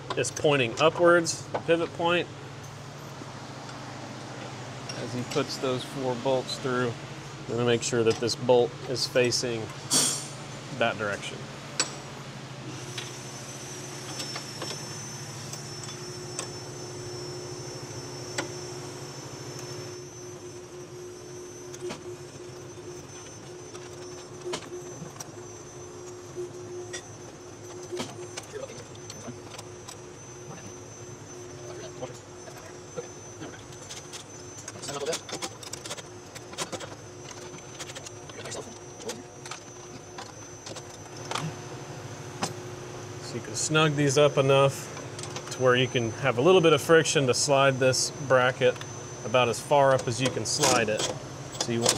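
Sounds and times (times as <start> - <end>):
steady background hum: 0.0 - 51.9
metallic clinks of bolts and wrench: 50.1 - 51.9.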